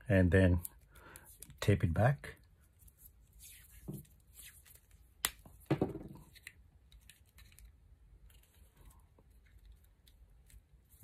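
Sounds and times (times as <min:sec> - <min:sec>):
knock: 0:05.7 - 0:06.2.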